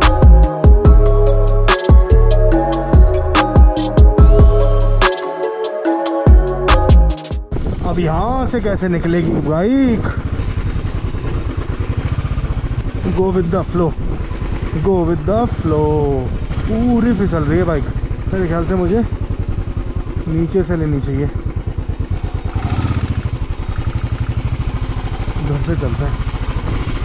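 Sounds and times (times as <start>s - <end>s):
motorcycle engine running: 6.3s - 27.0s.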